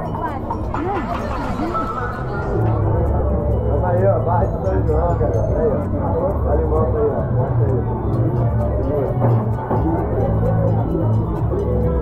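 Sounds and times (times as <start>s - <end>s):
background music with bass: 0.0s - 12.0s
voices chattering: 0.0s - 12.0s.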